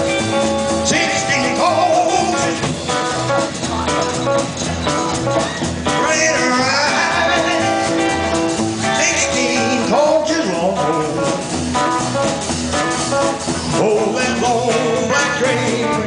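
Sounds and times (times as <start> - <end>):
acoustic rhythm guitar: 0.0 - 16.0
drum kit: 0.0 - 16.0
electric guitar lead: 0.0 - 16.0
upright bass: 0.0 - 16.0.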